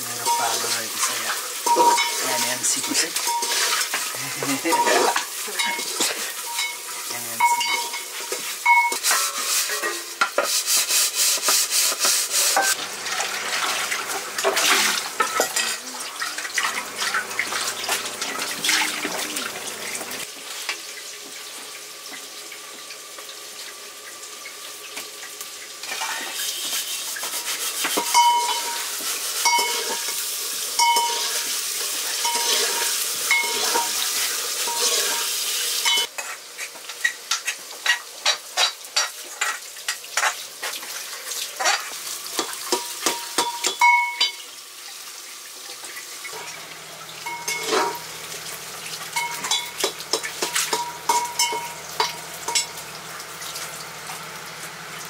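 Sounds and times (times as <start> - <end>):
vegetables sizzling in a pot: 0.0 - 55.0
water running from a tap: 0.0 - 55.0
spoon scraping a metal pot: 1.6 - 4.0, 4.7 - 12.8, 25.9 - 30.2, 30.8 - 31.5, 32.2 - 36.4, 47.2 - 48.1, 49.2 - 52.8.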